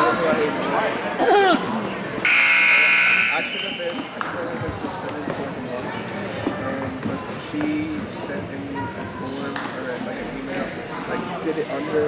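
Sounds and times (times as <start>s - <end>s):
scoreboard buzzer blare: 2.3s - 3.4s.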